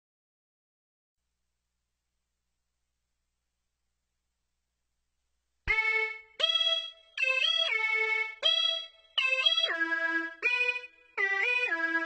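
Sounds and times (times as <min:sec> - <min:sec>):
synthesizer lead melody: 0:05.7 - 0:12.0.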